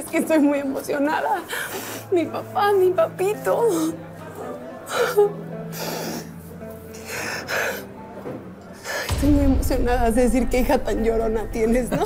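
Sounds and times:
soft background music: 0.0 - 12.0
young woman sobbing: 4.8 - 6.3.

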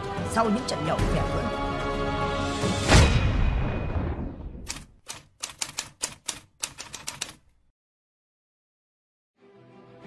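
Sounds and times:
deep hit: 2.8 - 4.6
typewriter keystroke clacks: 4.7 - 7.5.

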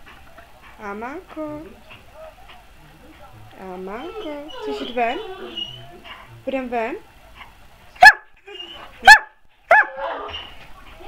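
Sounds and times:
dog barking: 8.0 - 8.3, 9.0 - 10.4.

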